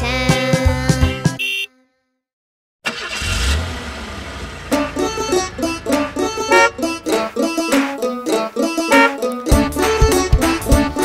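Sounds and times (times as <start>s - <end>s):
banjo music: 4.7s - 11.0s.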